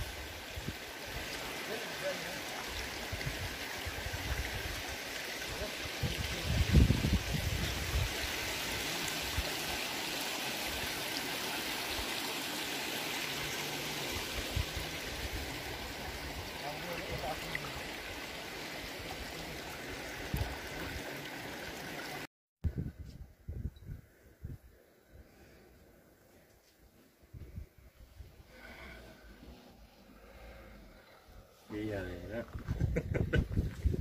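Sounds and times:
stream running over stones: 0.0 - 22.3.

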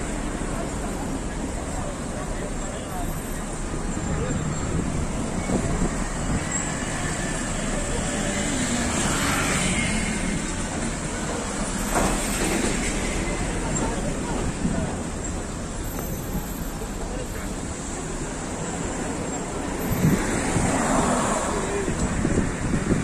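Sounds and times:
indistinct voices: 0.0 - 23.0
road traffic: 0.0 - 23.0.

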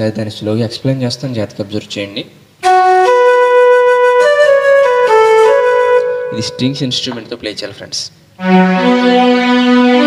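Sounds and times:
keyboard flute melody: 2.6 - 7.0, 8.4 - 10.0.

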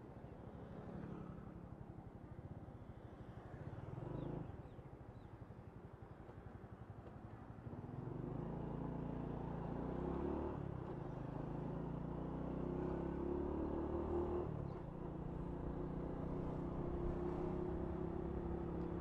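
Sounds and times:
motorcycle engine while riding: 7.5 - 19.0.

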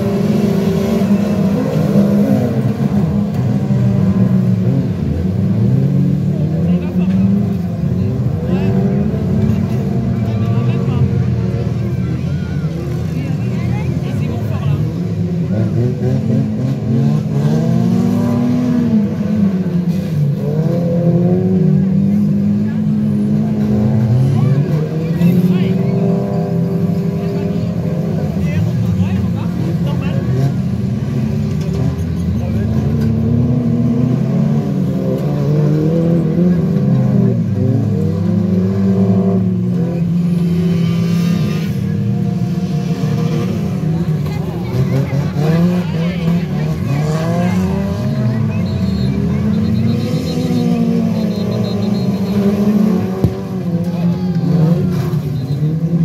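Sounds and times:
stock car engines racing: 0.0 - 56.0.

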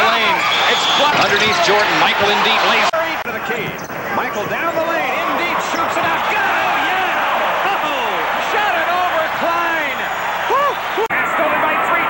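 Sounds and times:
crowd noise: 0.0 - 12.0
sneakers squeaking on a court: 3.6 - 6.0.

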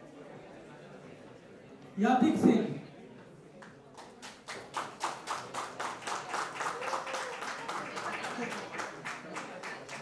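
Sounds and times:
audience clapping in rhythm: 4.0 - 10.0.

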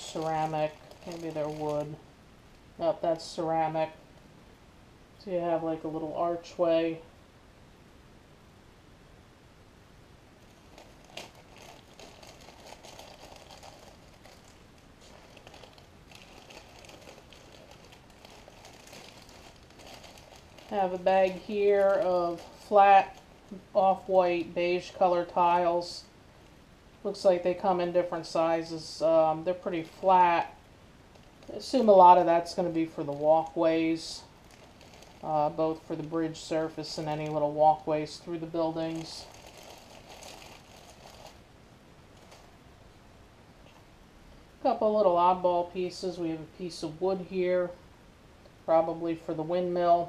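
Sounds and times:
plastic bags rustling: 0.0 - 2.0, 10.4 - 24.1, 27.8 - 42.6.

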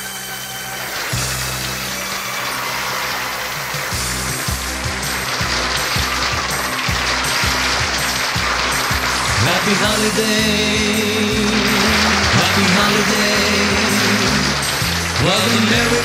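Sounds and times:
rock and roll band playing: 0.0 - 16.0
bass line: 4.0 - 16.0.

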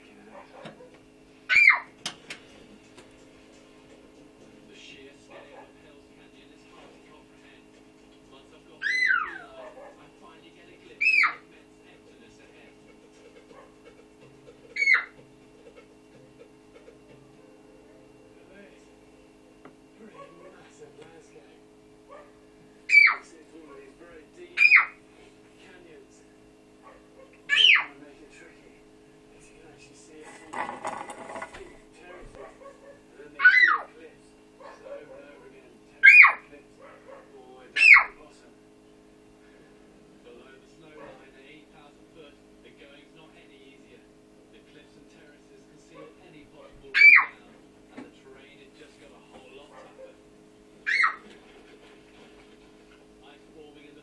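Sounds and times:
steady low hum: 0.0 - 54.0
animal whimpering cries: 1.5 - 1.9, 8.8 - 10.0, 14.7 - 15.2, 22.9 - 23.3, 24.6 - 25.0, 26.9 - 28.0, 32.4 - 34.0, 36.0 - 36.4, 37.8 - 38.2, 47.0 - 47.4, 50.8 - 51.3
short high yelps: 1.5 - 1.9, 22.9 - 23.2, 37.8 - 38.1, 50.8 - 51.2.

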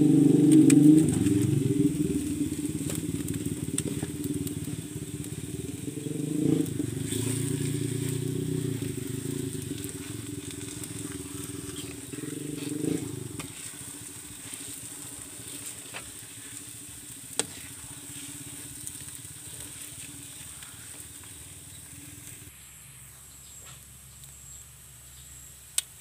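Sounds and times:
light sizzle: 0.0 - 26.0
metal spoon scraping a wok: 11.6 - 16.6, 17.3 - 21.0.

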